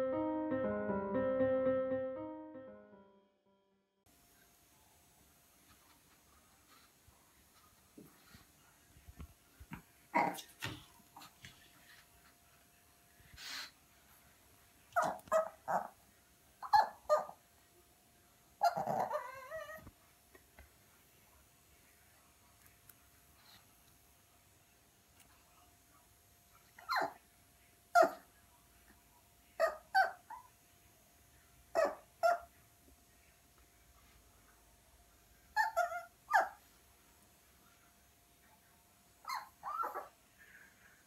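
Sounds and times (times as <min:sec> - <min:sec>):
puppy bark-whine: 0:14.9 - 0:16.0, 0:16.6 - 0:17.4, 0:18.6 - 0:19.8, 0:26.8 - 0:27.2, 0:27.9 - 0:28.2, 0:29.6 - 0:30.5, 0:31.7 - 0:32.6, 0:35.6 - 0:36.6, 0:39.2 - 0:40.1
puppy barking: 0:15.0 - 0:16.0, 0:29.6 - 0:30.5, 0:31.8 - 0:32.5, 0:35.6 - 0:36.6.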